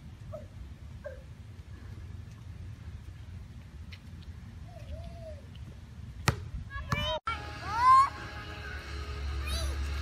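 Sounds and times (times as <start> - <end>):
basketball bouncing on asphalt: 6.2 - 7.2.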